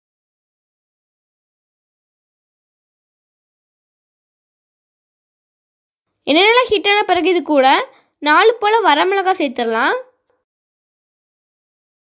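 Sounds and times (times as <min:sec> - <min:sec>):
woman's voice: 0:06.3 - 0:10.2.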